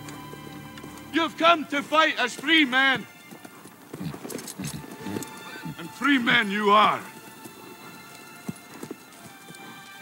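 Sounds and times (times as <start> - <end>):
horse hooves clopping: 0.0 - 10.0.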